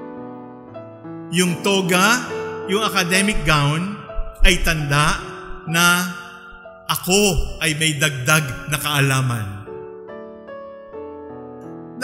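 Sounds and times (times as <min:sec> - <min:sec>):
piano music: 0:00.0 - 0:12.0.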